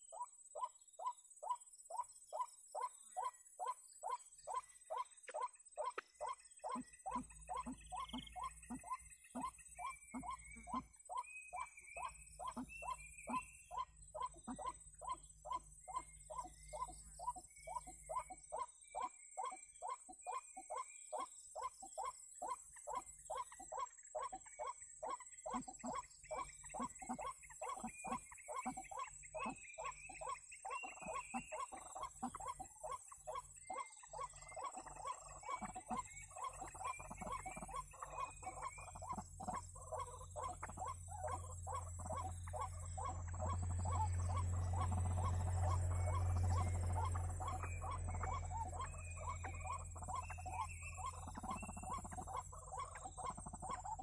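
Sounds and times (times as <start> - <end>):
waterhen croaking calls: 2.8 - 20.4, 21.6 - 54.0
low rumble: 41.0 - 52.4.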